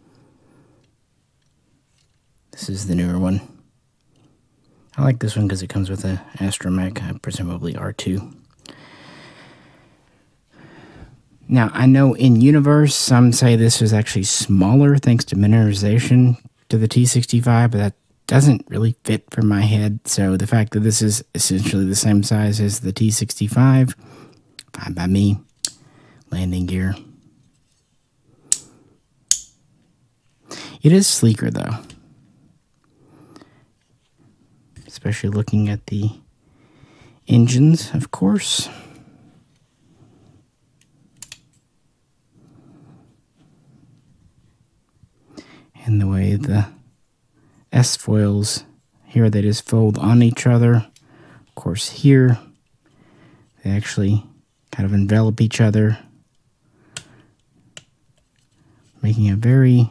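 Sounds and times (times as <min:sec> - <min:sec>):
plastic toy parts clicking: 0:25.5 - 0:25.8
soft rustling: 0:26.8 - 0:28.3
plastic toy light clicks: 0:29.3 - 0:29.6.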